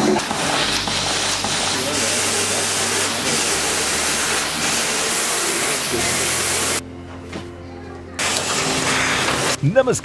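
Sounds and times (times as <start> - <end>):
machines running with hiss and hum: 0.0 - 6.8, 8.2 - 9.7.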